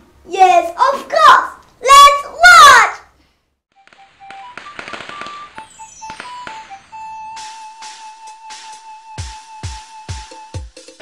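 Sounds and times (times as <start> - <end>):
boy's excited voice: 0.2 - 3.2
crackling firecracker sound effect: 3.8 - 9.6.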